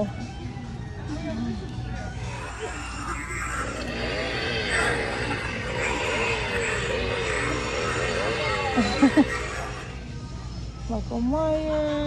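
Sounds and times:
toy chainsaw engine sound: 0:02.2 - 0:10.0.

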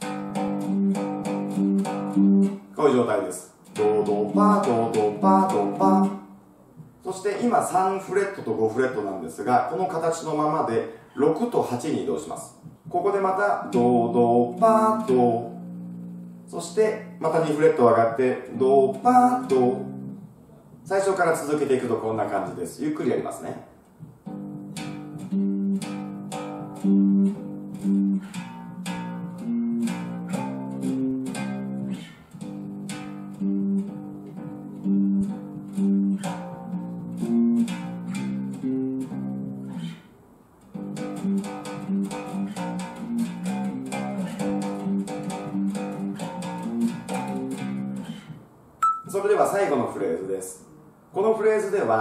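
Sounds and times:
electric bass octave pattern: 0:00.0 - 0:02.7, 0:03.6 - 0:06.4, 0:12.6 - 0:20.4, 0:24.2 - 0:40.0, 0:40.7 - 0:49.2.

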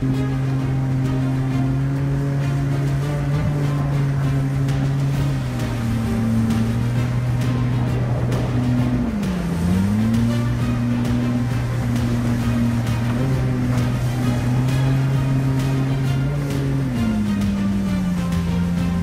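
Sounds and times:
background music: 0:00.0 - 0:19.0
boat motor running: 0:00.0 - 0:19.0.

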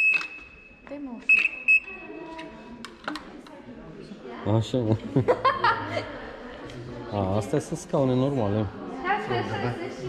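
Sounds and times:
short buzzer beeps: 0:00.0 - 0:02.2.

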